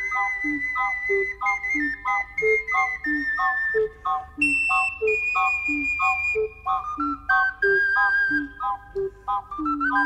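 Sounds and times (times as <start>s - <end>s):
ocarina melody: 0.0s - 10.0s.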